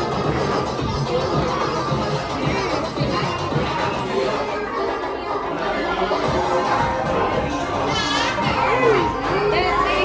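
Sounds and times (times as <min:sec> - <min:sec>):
children's voices: 0:00.0 - 0:10.0
music playing: 0:00.0 - 0:10.0
people chattering: 0:00.0 - 0:10.0.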